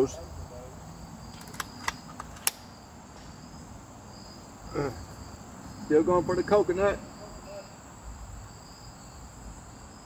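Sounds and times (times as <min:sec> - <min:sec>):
crickets trilling: 0:00.0 - 0:10.0
air rifle light clicks: 0:01.4 - 0:02.7.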